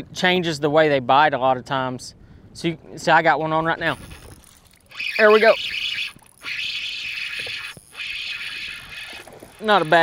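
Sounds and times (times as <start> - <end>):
fishing reel whirring: 3.9 - 10.0.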